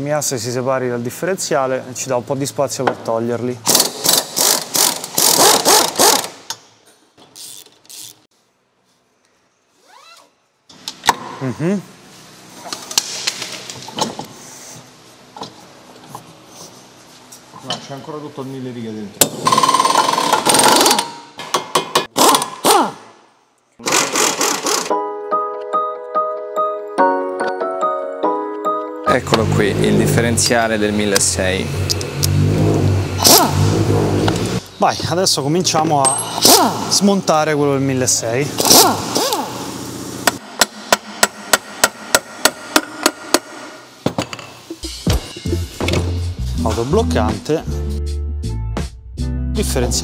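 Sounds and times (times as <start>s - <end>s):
pneumatic impact wrench: 3.6s - 6.6s, 7.2s - 8.3s, 19.2s - 23.2s, 23.8s - 24.9s, 31.8s - 34.6s, 36.2s - 37.0s, 38.6s - 43.8s.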